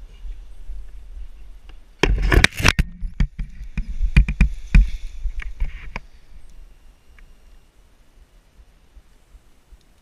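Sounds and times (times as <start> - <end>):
wind rumble on microphone: 0.0 - 6.8.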